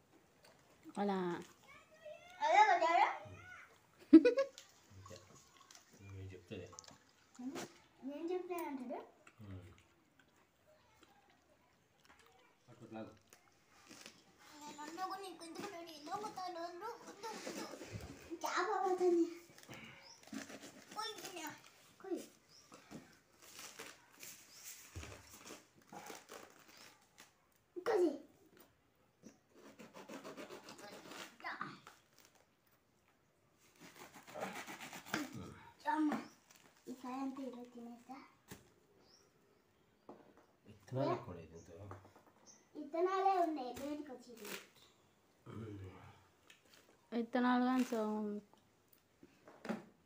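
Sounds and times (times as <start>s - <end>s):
fruit flesh tearing: 12.0s - 14.5s, 22.5s - 27.4s, 33.6s - 35.6s, 44.4s - 45.0s.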